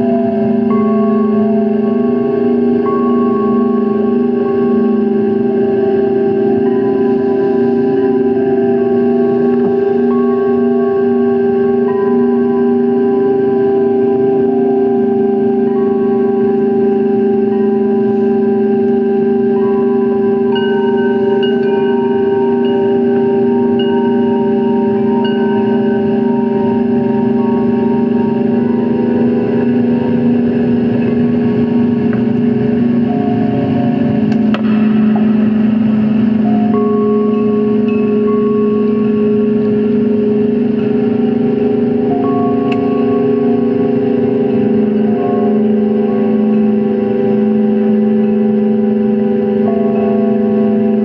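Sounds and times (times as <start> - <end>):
electronic keyboard drone chord: 0.0 - 51.0.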